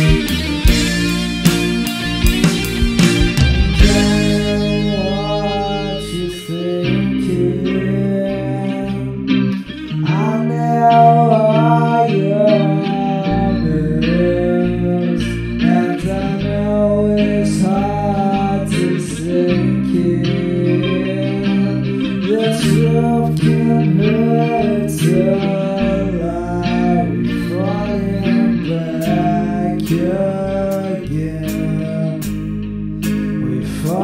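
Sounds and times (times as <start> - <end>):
guitar-led instrumental song: 0.0 - 34.0
sliding lead guitar line: 0.0 - 34.0.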